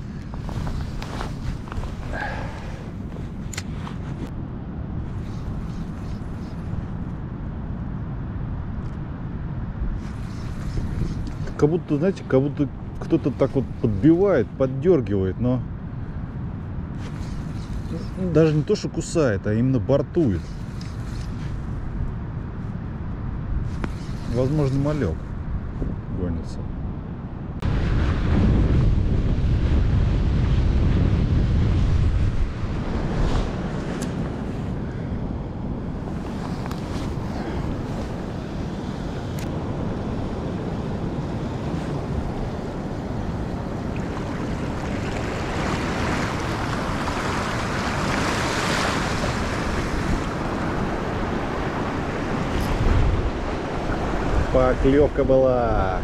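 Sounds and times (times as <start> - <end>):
wind buffeting microphone: 0.0 - 56.0
small waves lapping on sand: 36.0 - 55.1.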